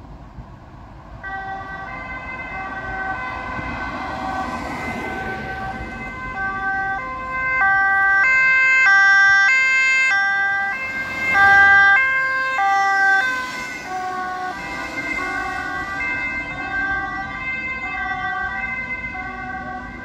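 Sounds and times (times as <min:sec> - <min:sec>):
two-tone siren passing: 0:01.2 - 0:20.0.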